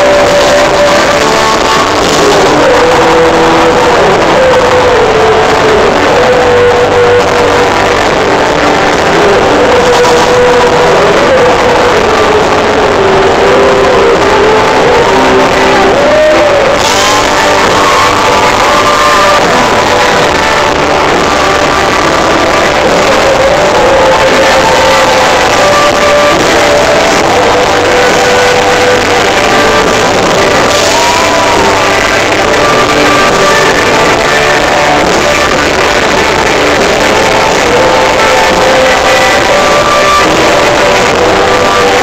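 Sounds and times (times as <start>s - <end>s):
pop-rock band playing live: 0.0s - 42.0s.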